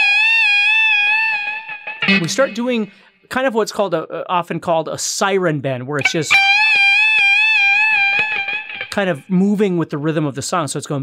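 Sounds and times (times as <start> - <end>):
electric guitar bent note: 0.0 - 3.1, 6.0 - 9.3.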